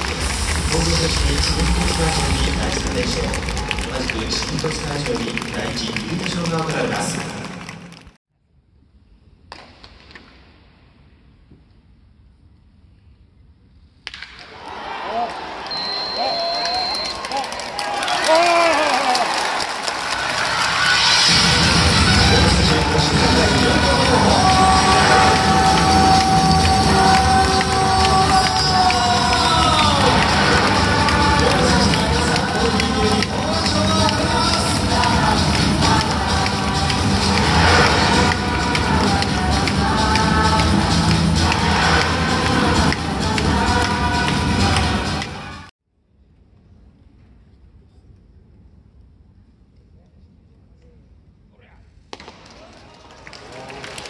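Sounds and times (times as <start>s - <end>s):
ballpark music: 0.0s - 7.6s, 21.2s - 45.7s
loud echoing voice: 0.0s - 7.6s, 21.4s - 45.7s
crowd noise: 0.0s - 8.1s, 14.5s - 45.7s
indoor stadium ambience: 0.0s - 54.0s
sharp crack: 52.1s - 52.7s.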